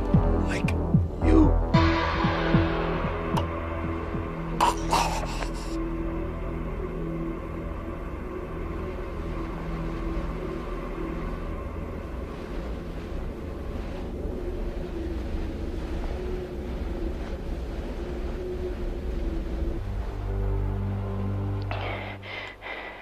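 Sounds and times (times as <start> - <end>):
constant low rumble: 0.0 - 23.0
suspense film score drone: 0.0 - 23.0.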